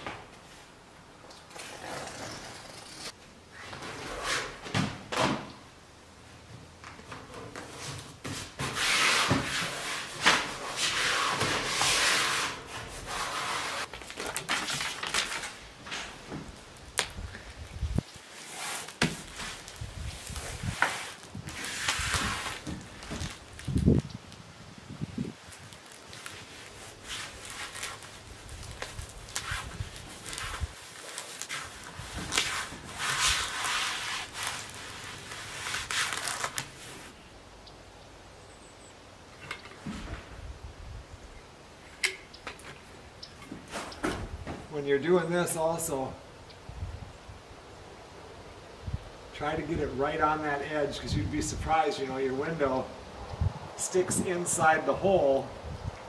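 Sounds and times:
crackling and rustling wrap: 0:01.4 - 0:04.6, 0:06.7 - 0:37.3.

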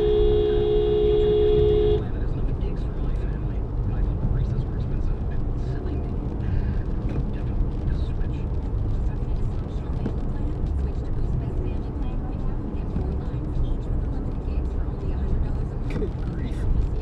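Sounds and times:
car road and engine noise: 0:00.0 - 0:17.0.

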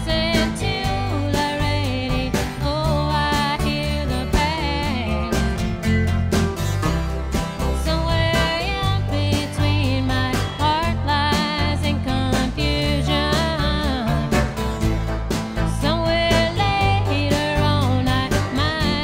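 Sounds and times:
woman singing: 0:00.0 - 0:05.6, 0:07.6 - 0:14.6, 0:15.6 - 0:19.0
bass: 0:00.0 - 0:19.0
drums: 0:00.0 - 0:19.0
electric guitar: 0:00.0 - 0:19.0.

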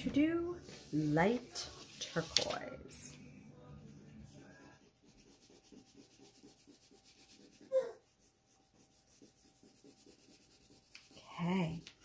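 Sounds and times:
crayon scratching on paper: 0:03.9 - 0:12.0.

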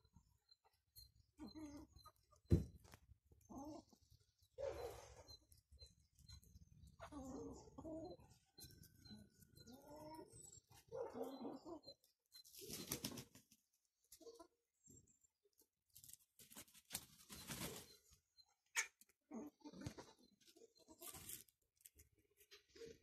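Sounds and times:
chickens clucking: 0:03.4 - 0:13.4, 0:16.9 - 0:21.4.

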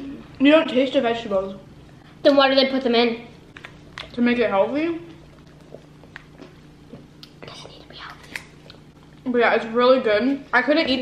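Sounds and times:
low steady hum: 0:00.0 - 0:11.0
quiet chewing: 0:05.0 - 0:09.3.

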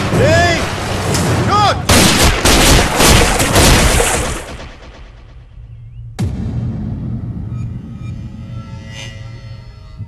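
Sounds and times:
gunshot: 0:01.9 - 0:05.0
rumbling soundtrack bed: 0:03.3 - 0:10.0.

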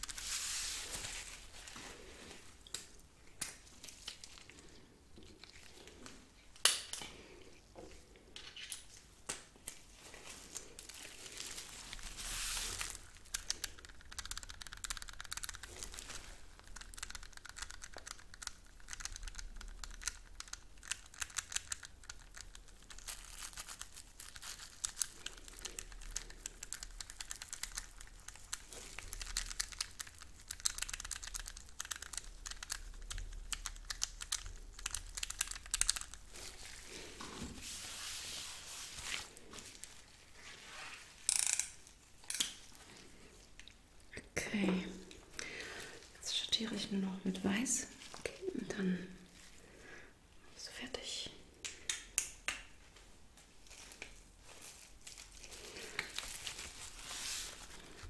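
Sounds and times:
cling film crinkling: 0:08.9 - 0:43.6, 0:53.4 - 0:58.0.

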